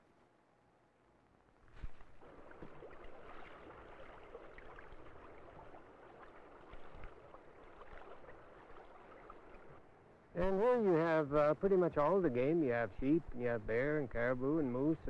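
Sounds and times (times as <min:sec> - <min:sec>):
stream water rushing: 0:01.9 - 0:12.2.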